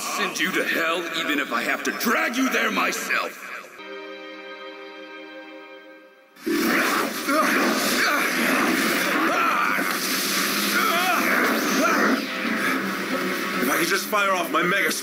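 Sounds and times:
action music and sound effects: 0.0s - 15.0s
held music chord: 3.8s - 6.4s.

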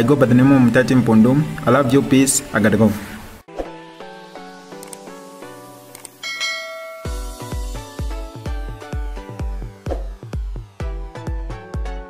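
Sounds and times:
electronic music with kick drum: 3.9s - 12.0s
bell-like notification chime: 6.2s - 7.8s.

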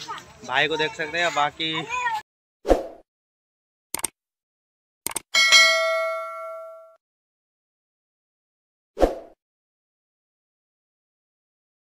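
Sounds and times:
short clicks: 3.9s - 4.2s, 5.0s - 5.3s
notification bell ding: 5.4s - 7.0s.

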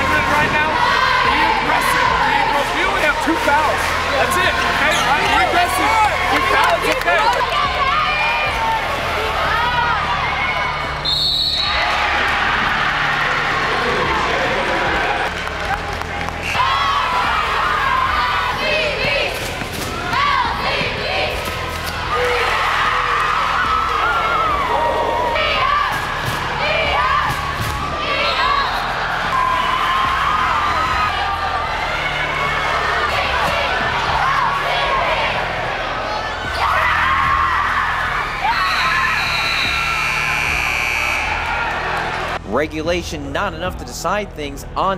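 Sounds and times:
players and crowd shouting and cheering: 0.0s - 44.9s.

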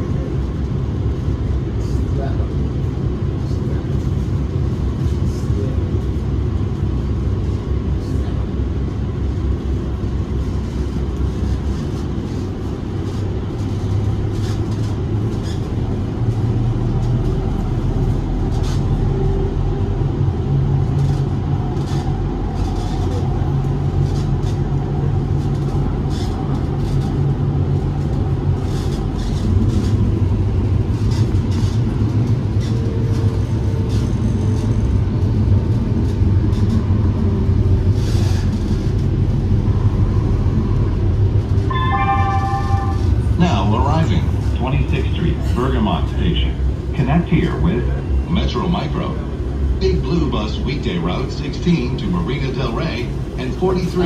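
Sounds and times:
train wheels rumbling on rail: 0.0s - 54.0s
faint whine: 40.6s - 54.0s.

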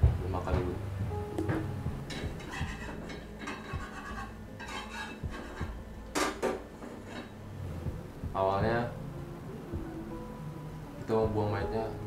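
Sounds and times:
low background music: 0.0s - 12.0s
spatula scraping frying pan: 2.1s - 5.8s, 6.8s - 7.4s.

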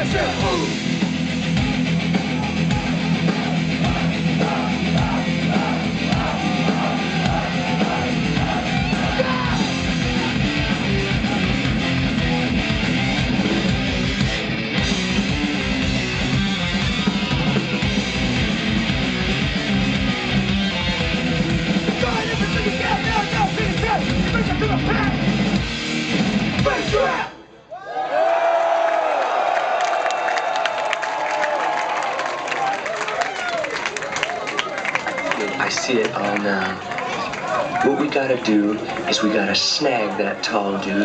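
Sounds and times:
thrash metal band playing live: 0.0s - 27.2s
crowd noise: 0.0s - 41.0s.

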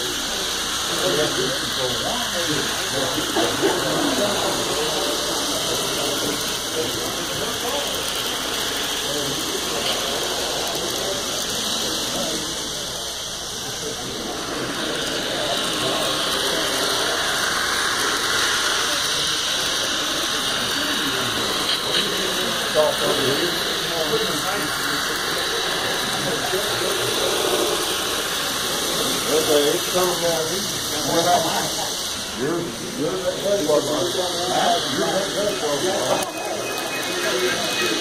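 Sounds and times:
crowd chatter: 0.0s - 38.0s
model trains rattling: 0.0s - 38.0s.

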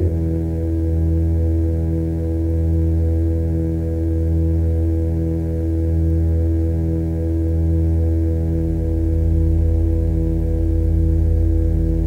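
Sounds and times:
dark ambient drone music: 0.0s - 3.6s, 7.9s - 12.0s.

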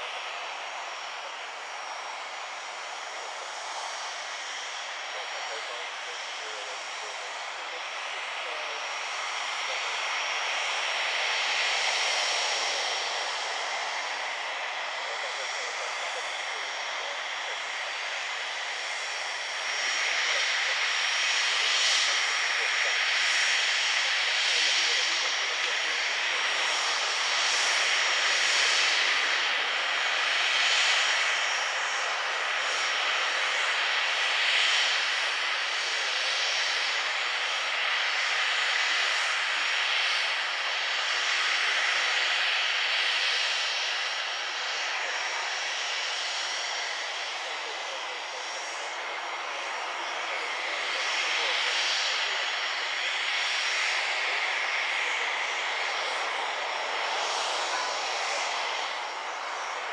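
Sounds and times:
jet engine idling: 0.0s - 59.9s.

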